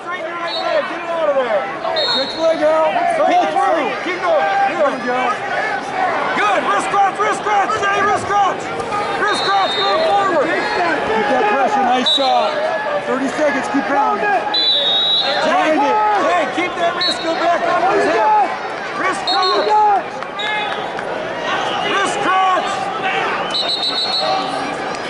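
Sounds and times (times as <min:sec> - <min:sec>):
crowd shouting: 0:00.0 - 0:25.0.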